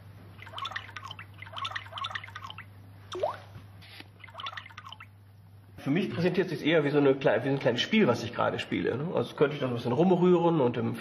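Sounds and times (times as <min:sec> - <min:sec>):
low steady hum: 0:00.0 - 0:06.9
synthetic water-drop plinks: 0:00.4 - 0:03.5, 0:04.2 - 0:05.1.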